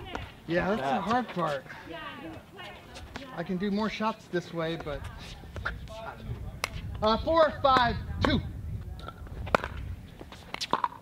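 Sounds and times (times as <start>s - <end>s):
faint voices: 0.0s - 10.5s
wind rumble on microphone: 5.0s - 10.3s.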